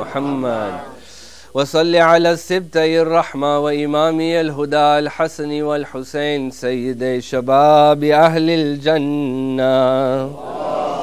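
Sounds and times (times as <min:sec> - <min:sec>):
man chanting: 0:00.0 - 0:10.4.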